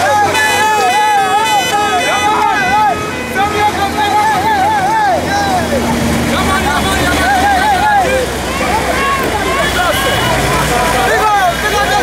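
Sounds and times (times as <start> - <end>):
low rumble of vehicle engines: 0.0 - 12.0.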